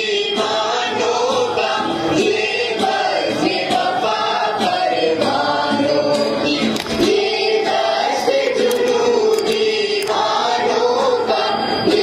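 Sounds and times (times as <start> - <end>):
many voices singing in chorus: 0.0 - 12.0.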